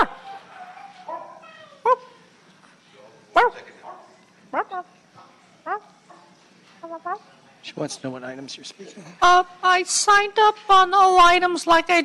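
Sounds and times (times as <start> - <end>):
dog barking: 0.0 - 2.0, 3.4 - 4.8.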